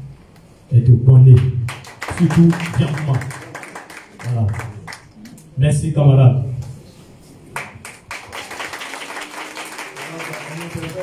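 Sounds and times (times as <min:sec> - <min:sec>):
people clapping: 0:01.3 - 0:05.4, 0:07.5 - 0:11.0.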